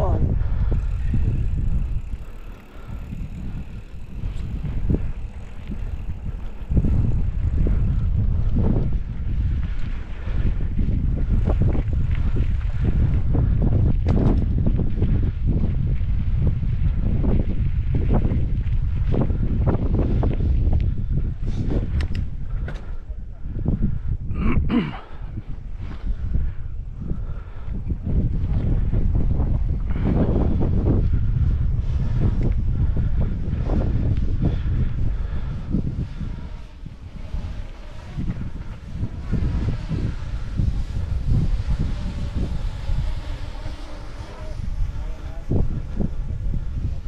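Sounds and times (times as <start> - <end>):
wind buffeting microphone: 0.0 - 47.0
tyres on loose dirt: 0.8 - 8.0, 33.5 - 46.8
bike knocks and rattles: 14.0 - 14.7, 21.8 - 23.0.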